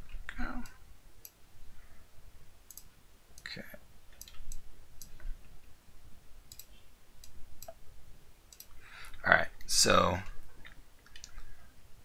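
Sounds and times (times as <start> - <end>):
faint computer mouse clicks: 2.7 - 3.5, 6.5 - 7.8, 8.5 - 8.8, 11.0 - 11.5.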